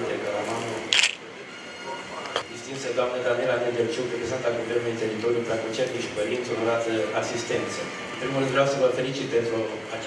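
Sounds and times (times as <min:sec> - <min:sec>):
man speaking over microphone: 0:00.0 - 0:01.2.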